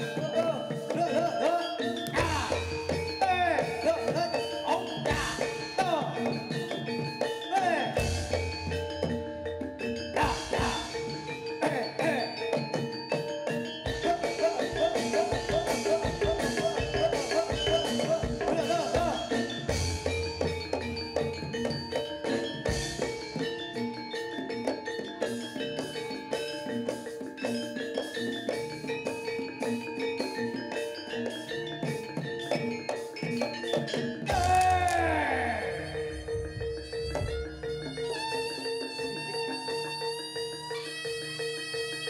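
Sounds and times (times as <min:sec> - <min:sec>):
gamelan music: 0:00.0 - 0:42.0
ringing metal percussion: 0:00.0 - 0:42.0.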